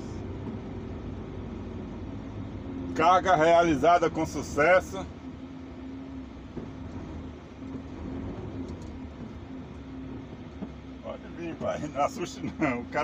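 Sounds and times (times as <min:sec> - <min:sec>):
truck diesel engine rumble: 0:00.0 - 0:13.0.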